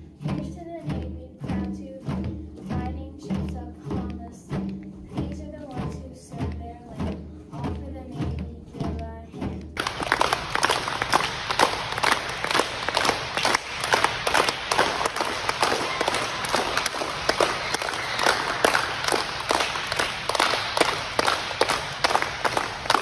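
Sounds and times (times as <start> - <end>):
children clapping: 9.8 - 23.0.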